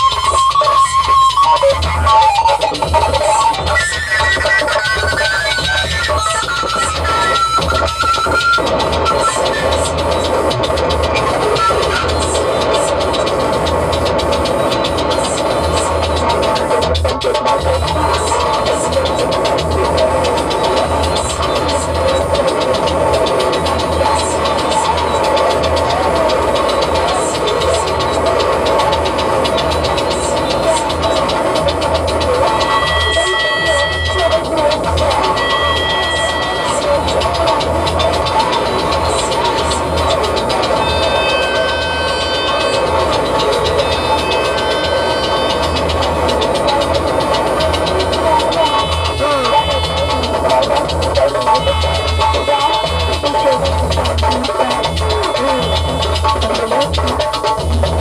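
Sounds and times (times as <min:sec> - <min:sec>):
cluster of higher tones: 0:00.0 - 0:58.0
high ticks: 0:00.0 - 0:58.0
pulsing bass: 0:00.0 - 0:58.0
steady synth tones: 0:00.0 - 0:58.0
wavering mid-range texture: 0:00.0 - 0:58.0.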